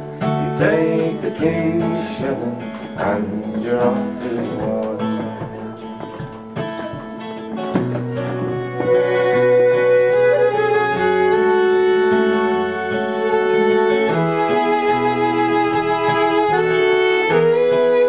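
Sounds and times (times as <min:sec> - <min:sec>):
fiddle melody: 0:00.0 - 0:18.0
strummed acoustic guitar: 0:00.0 - 0:18.0.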